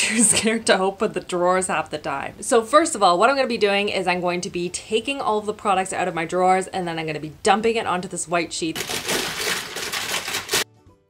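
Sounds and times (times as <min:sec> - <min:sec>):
lipstick tubes clattering: 0:08.8 - 0:10.6.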